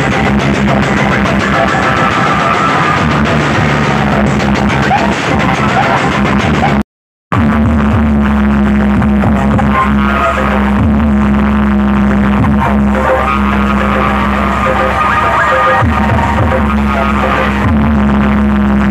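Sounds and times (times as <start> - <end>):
loud dance music with heavy bass: 0.0 - 18.9
steady low tone: 7.3 - 18.9.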